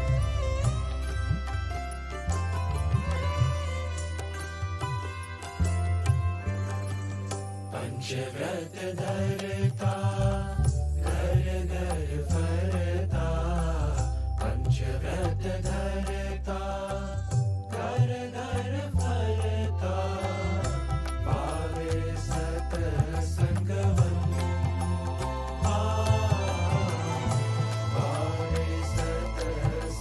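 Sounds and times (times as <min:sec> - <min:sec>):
instrumental backing with low bass: 0:00.0 - 0:30.0
young men singing devotional song: 0:07.7 - 0:30.0.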